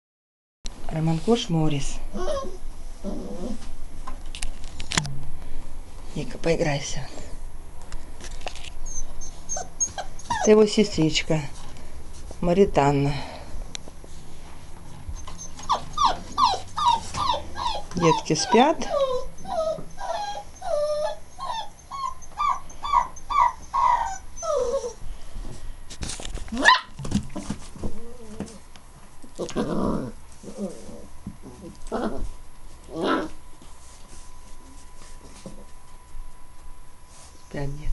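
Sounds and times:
puppy whimpering: 2.1 - 3.6, 8.8 - 11.0, 15.2 - 25.0, 27.8 - 28.6.

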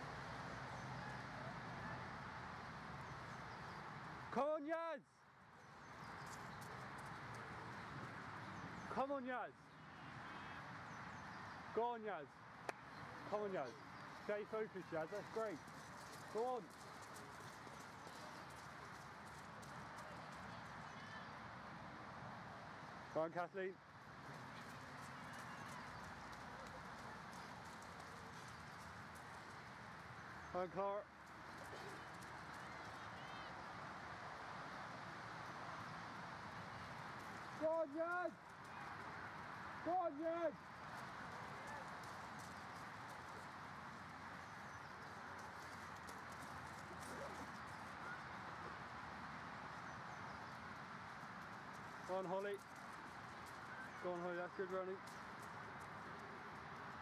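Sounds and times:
steady outdoor hiss: 0.0 - 57.0
footsteps of runners on grass: 12.8 - 21.3, 23.9 - 33.5, 35.1 - 57.0.

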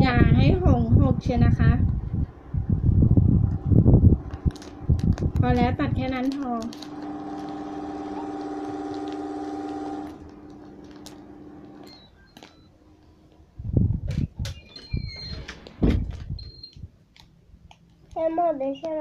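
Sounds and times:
steady mechanical hum: 0.0 - 19.0
plastic bag rustling: 3.9 - 12.6.

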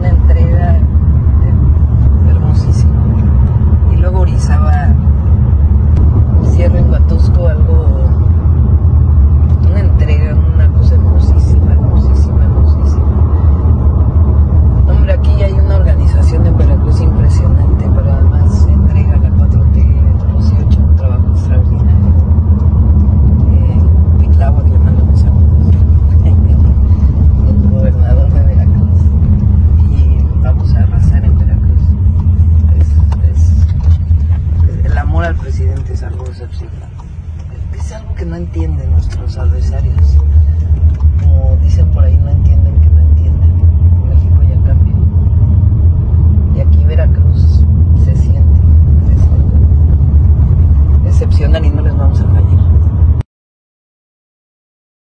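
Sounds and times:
car cabin road and engine rumble: 0.0 - 53.2.

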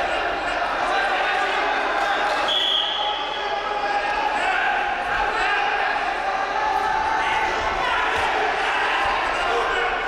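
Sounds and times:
chatter of voices in a hall: 0.0 - 10.0
referee's whistle blast: 2.5 - 3.3.

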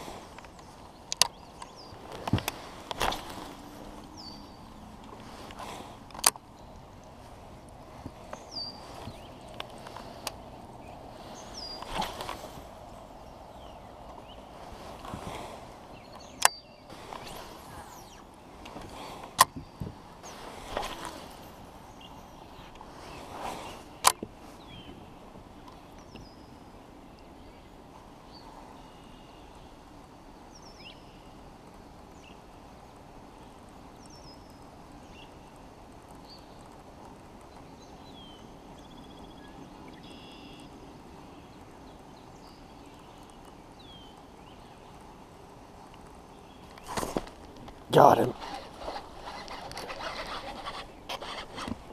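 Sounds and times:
faint steady hiss: 0.0 - 51.9
fishing rod swishes: 16.9 - 18.2, 48.3 - 51.8
reel turning: 46.8 - 51.9.

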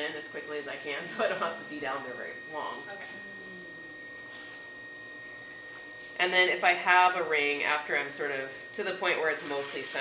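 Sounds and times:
faint hum: 0.0 - 10.0
potter's wheel whine: 0.0 - 10.0.

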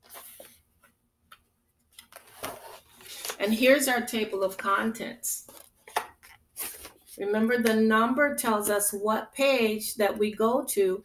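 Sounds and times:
paper pages rustling: 0.0 - 0.9, 1.9 - 3.6, 5.4 - 7.2.

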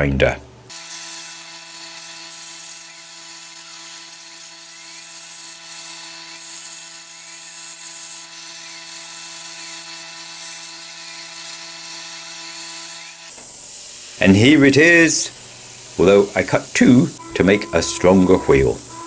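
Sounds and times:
plasma cutter hissing: 2.0 - 19.0.

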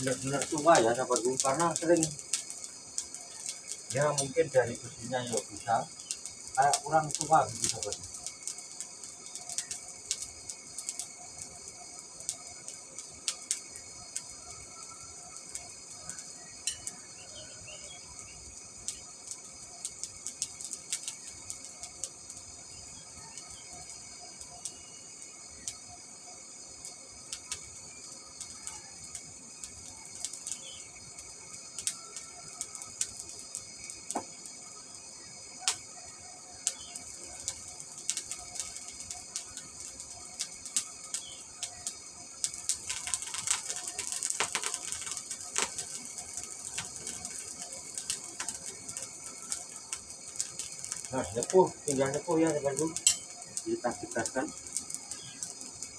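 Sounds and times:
burning charcoal crackling: 0.0 - 55.9
forge blower hiss: 0.0 - 55.9.

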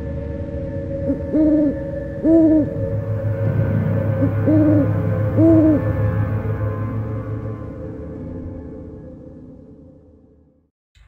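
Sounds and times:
dark ambient music drone: 0.0 - 10.7
owl hooting: 1.0 - 2.9, 4.2 - 6.0.

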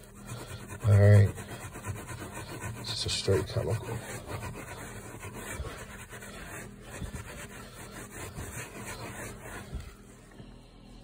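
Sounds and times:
towel scrubbing carpet: 0.0 - 10.2.

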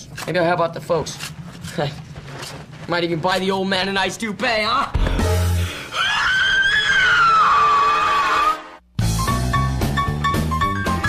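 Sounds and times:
startled scream: 5.8 - 8.7.

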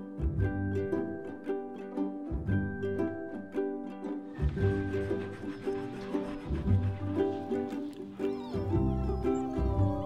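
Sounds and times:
light background music: 0.0 - 10.0
puppy squeaking and whimpering: 8.1 - 10.0.

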